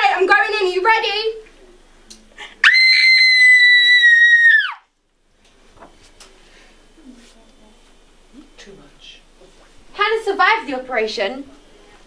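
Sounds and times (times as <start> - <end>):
girl screaming: 2.6 - 4.9.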